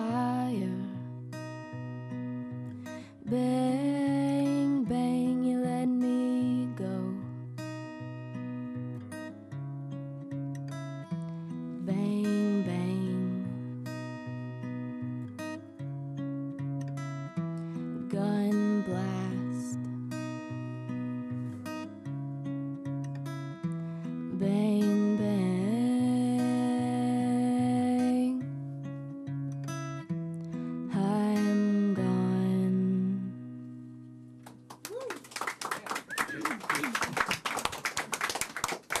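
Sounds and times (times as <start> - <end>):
fingerpicked acoustic guitar: 0.0 - 34.8
applause: 34.4 - 39.0.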